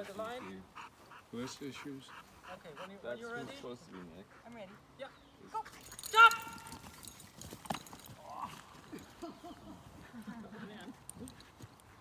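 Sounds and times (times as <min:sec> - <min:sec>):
dog paws galloping on grass: 0:00.0 - 0:12.0.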